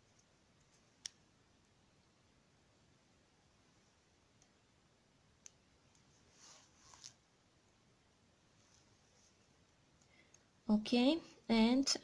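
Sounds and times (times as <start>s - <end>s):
soft rustles: 6.0s - 7.3s, 8.5s - 10.2s.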